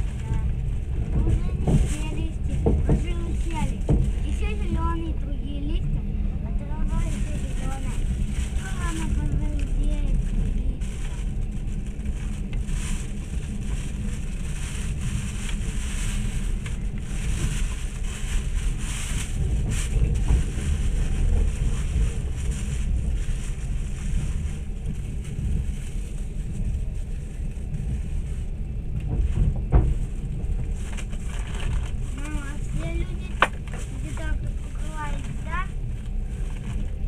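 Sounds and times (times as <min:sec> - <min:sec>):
train wheels rumbling: 0:00.0 - 0:37.0
wind noise: 0:00.0 - 0:37.0.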